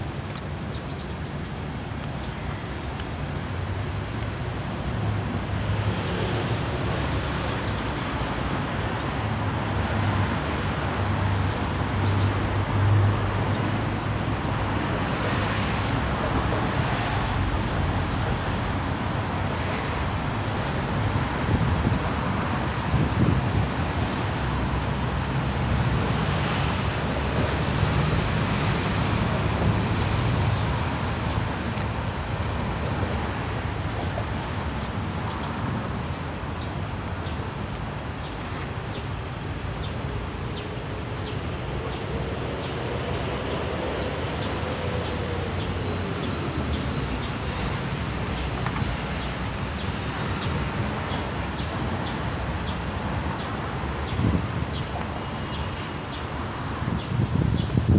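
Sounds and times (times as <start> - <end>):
road traffic rumble: 0.0 - 57.9.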